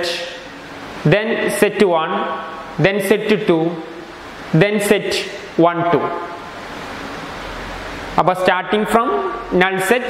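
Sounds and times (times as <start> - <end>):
background hiss: 0.0 - 10.0.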